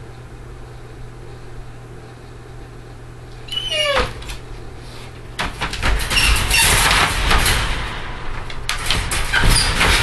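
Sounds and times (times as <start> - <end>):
metal wire crate rattling: 5.4 - 10.0.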